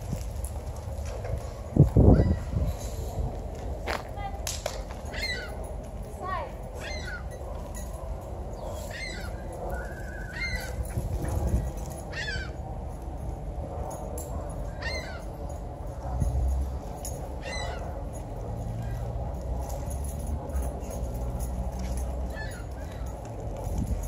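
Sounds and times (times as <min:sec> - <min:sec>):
steady low rumble: 0:00.0 - 0:24.0
bird calling: 0:05.1 - 0:05.6, 0:06.8 - 0:07.4, 0:08.6 - 0:10.9, 0:12.1 - 0:12.6, 0:14.7 - 0:15.3.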